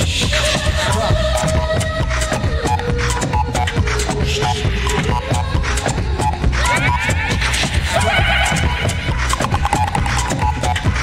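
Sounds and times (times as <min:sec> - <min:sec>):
looped music with beat and bass: 0:00.0 - 0:11.0
high wavering vocal sound: 0:00.2 - 0:09.6
short repeated blips: 0:08.4 - 0:11.0.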